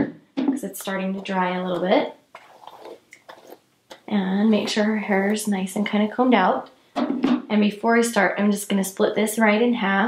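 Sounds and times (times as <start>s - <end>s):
hair rustling: 0.8s - 6.2s.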